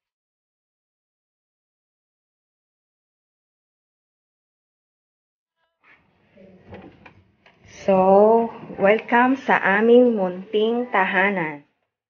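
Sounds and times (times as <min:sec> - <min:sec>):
wooden door opening: 0:06.3 - 0:07.8.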